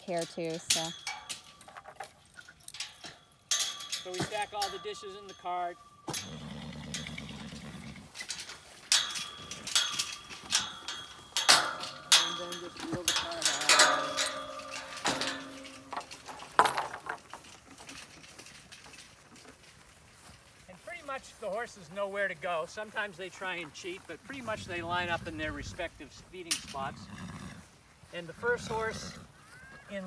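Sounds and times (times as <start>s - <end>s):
feed pans and bucket clinking: 0.0s - 27.0s
metal gate and chain: 0.0s - 27.4s
garden cart rattling over grass: 0.0s - 30.0s.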